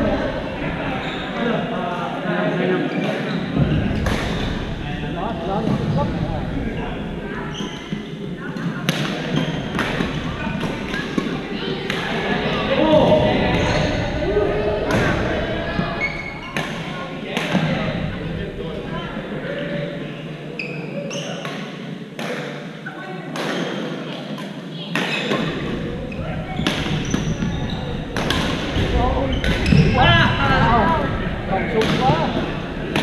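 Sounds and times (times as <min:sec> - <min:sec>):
indistinct chatter: 0:00.0 - 0:33.0
rackets striking shuttlecock: 0:28.1 - 0:29.8.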